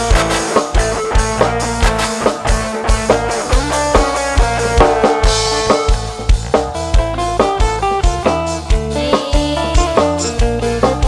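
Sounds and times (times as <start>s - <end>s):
bass: 0.0s - 11.0s
plucked guitar melody: 0.0s - 11.0s.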